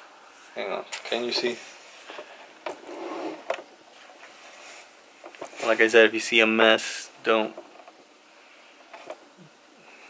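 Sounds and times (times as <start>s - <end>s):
faint rustling: 0.3s - 10.0s.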